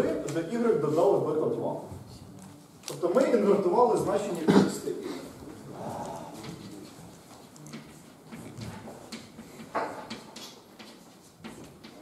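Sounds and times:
chalk tapping and scraping on blackboard: 6.4s - 12.0s.

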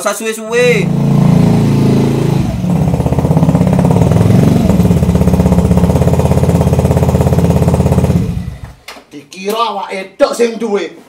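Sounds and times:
motor scooter engine idling: 0.6s - 8.8s.

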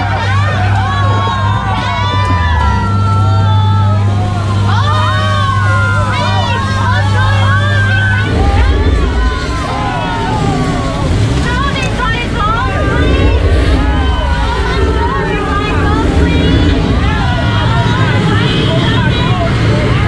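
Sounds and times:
boat motor hum: 0.0s - 20.0s
churning water: 0.0s - 20.0s.

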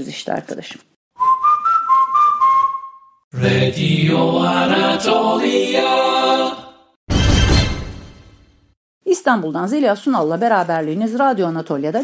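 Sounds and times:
whistled melody: 1.2s - 3.2s.

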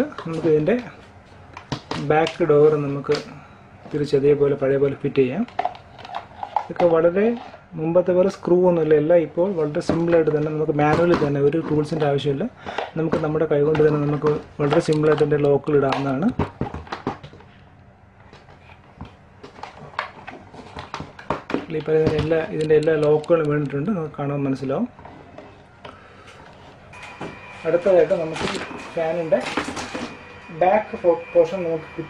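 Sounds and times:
plastic parts clicking and knocking: 5.4s - 7.4s, 9.8s - 17.4s.

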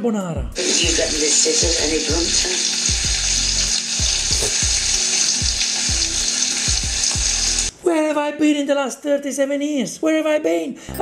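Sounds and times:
food bubbling and sizzling in pot: 0.6s - 7.7s
deep music beat thumping: 4.0s - 7.7s.

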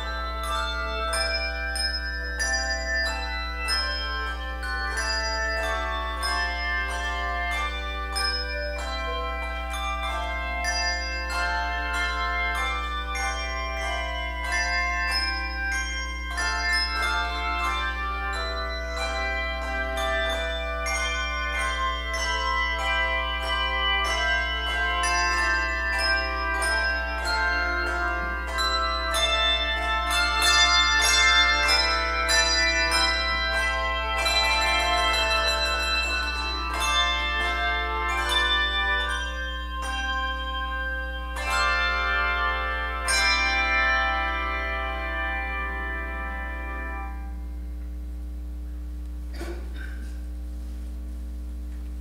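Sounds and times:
handbell choir playing chords: 0.0s - 47.8s.

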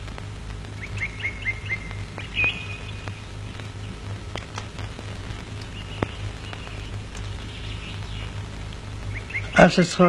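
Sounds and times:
bird chirping: 0.8s - 10.0s.

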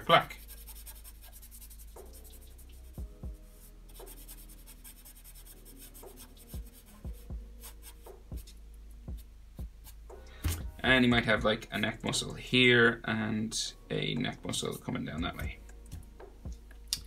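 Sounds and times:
marker scratching on paper: 0.0s - 8.5s.

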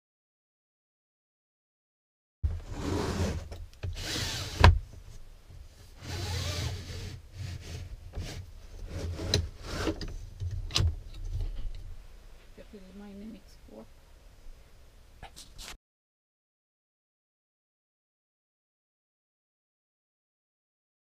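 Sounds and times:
blind rubbing swishes: 6.0s - 10.0s.

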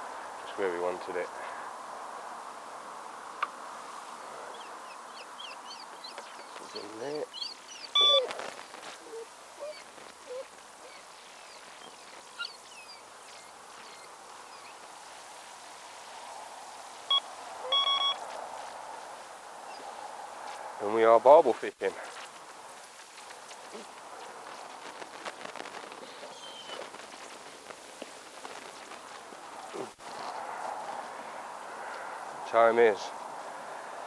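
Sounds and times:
small birds chirping: 4.1s - 15.3s, 19.6s - 20.6s, 22.8s - 30.0s
bite alarm beeps: 8.0s - 8.3s, 17.1s - 18.2s.

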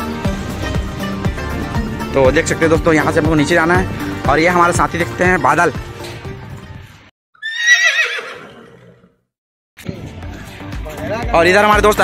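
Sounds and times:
horse whinnying: 7.4s - 9.2s.

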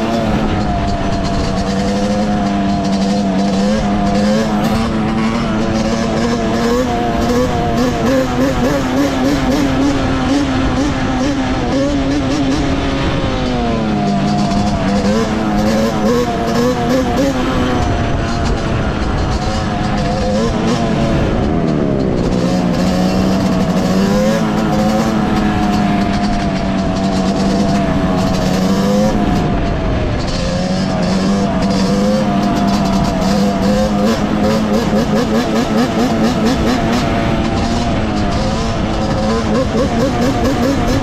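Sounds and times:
two-stroke engine revving: 0.0s - 41.0s.

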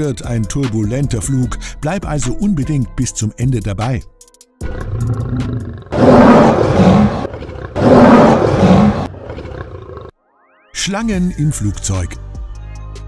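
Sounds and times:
lion roaring: 4.6s - 10.1s.

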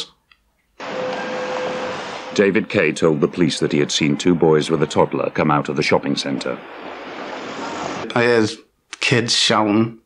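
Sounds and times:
street traffic noise: 0.8s - 8.2s.

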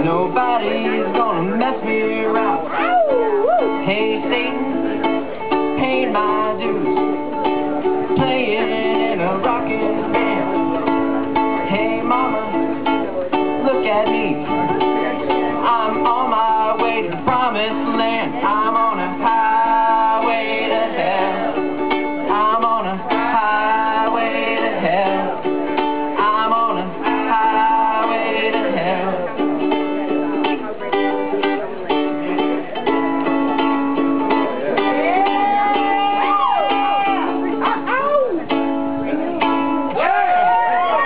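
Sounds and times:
person singing: 0.0s - 31.4s, 32.4s - 41.0s
ukulele strumming rock chords: 0.0s - 41.0s.

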